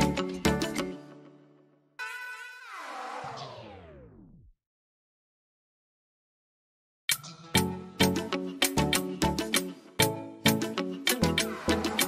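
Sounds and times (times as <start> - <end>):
background music: 0.0 - 2.0, 7.1 - 12.0.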